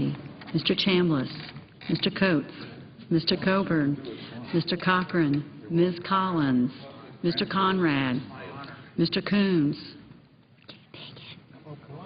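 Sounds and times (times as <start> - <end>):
murmur of quiet conversation: 0.0 - 12.0.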